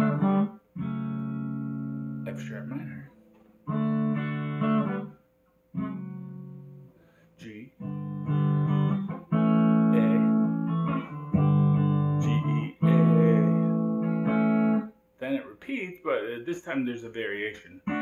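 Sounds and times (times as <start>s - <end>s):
electric guitar strumming chords: 0.0s - 15.0s, 17.8s - 18.0s.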